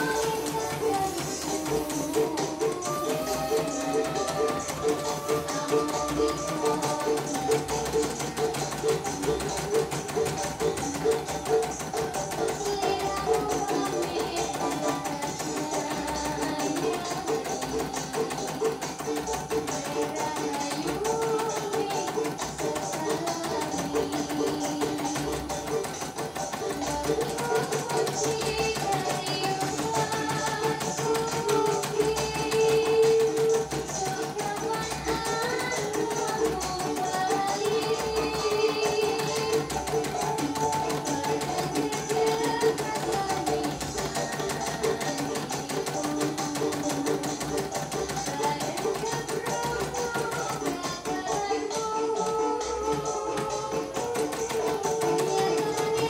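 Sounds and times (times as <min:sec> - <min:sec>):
plucked string instrument melody: 0:00.0 - 0:56.0.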